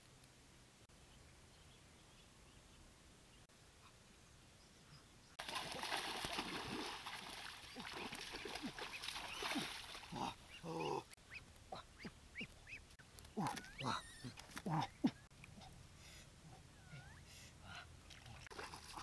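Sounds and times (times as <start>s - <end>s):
splashing in muddy water: 5.4s - 11.1s, 18.0s - 19.0s.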